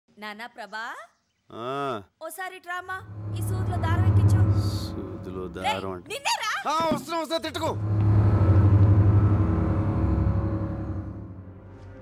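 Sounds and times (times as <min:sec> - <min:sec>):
low pulsing rumbling drone: 0:03.0 - 0:06.0, 0:07.6 - 0:12.0.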